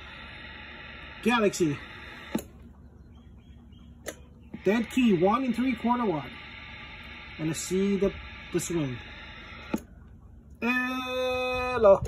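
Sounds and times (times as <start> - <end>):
radio receiver hiss: 0.0 - 2.6, 4.5 - 9.9.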